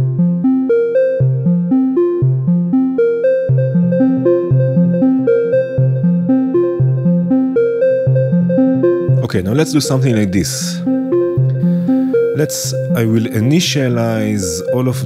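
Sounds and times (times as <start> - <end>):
steady held synth tone: 0.0 - 15.0
synth plucked note sequence: 0.0 - 15.0.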